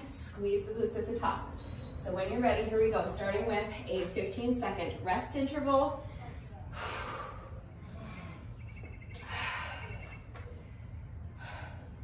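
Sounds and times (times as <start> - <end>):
woman breathing hard: 9.2 - 10.1, 10.9 - 12.0.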